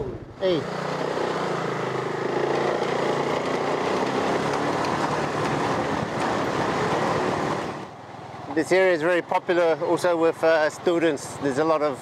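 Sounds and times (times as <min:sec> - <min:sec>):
road and wind noise: 0:00.0 - 0:12.0
scooter engine running: 0:00.4 - 0:08.0.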